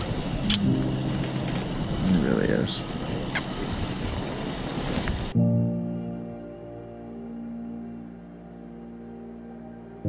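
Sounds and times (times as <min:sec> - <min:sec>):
wind noise on microphone: 0:00.0 - 0:05.4
music held chord: 0:00.4 - 0:03.2, 0:05.3 - 0:10.0.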